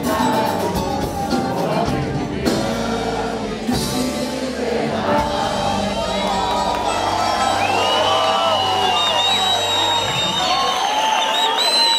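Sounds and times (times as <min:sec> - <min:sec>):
samba band chord ringing: 0:05.4 - 0:10.9
crowd cheering and whooping: 0:05.4 - 0:11.9.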